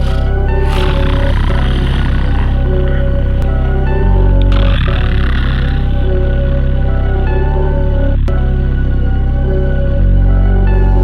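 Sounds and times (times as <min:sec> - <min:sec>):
rough noisy layer: 0:00.0 - 0:06.9
instrumental music with pulsing bass: 0:00.0 - 0:11.0.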